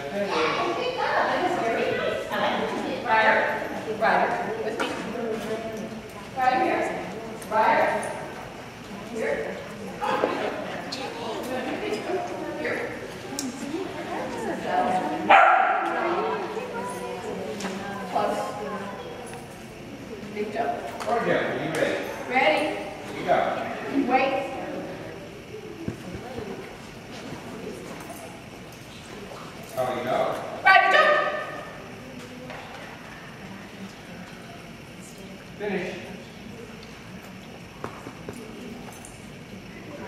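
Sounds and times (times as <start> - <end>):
low hall hum: 0.0 - 40.0
murmur of people talking: 0.0 - 40.0
dog barking in large hall: 15.2 - 16.3, 30.6 - 31.8.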